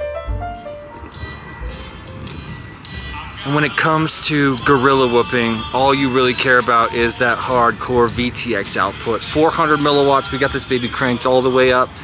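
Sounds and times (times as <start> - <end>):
faint music: 0.0 - 12.0
street noise: 0.0 - 12.0
traffic rumble: 0.0 - 12.0.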